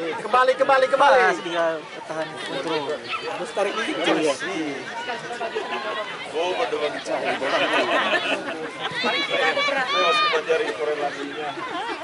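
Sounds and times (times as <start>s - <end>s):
spectators chattering and calling: 0.0s - 12.0s.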